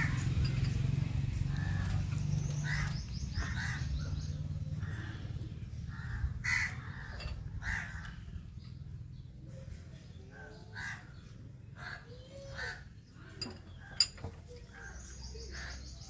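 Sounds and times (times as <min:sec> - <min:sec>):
harsh bird calls: 0:00.0 - 0:16.0.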